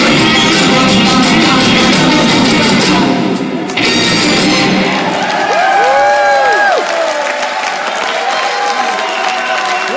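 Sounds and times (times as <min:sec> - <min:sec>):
audience applauding and cheering: 0:03.7 - 0:09.9.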